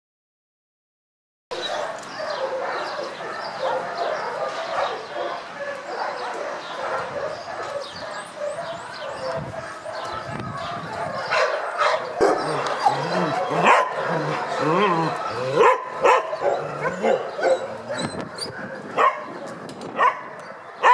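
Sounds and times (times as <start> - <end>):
many dogs barking and yipping: 1.5 - 20.9.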